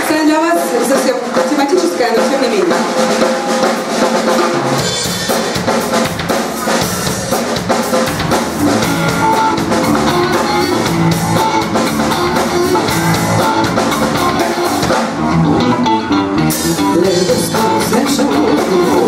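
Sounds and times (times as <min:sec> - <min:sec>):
drum kit beat: 0:00.0 - 0:19.0
electric guitars: 0:00.0 - 0:19.0.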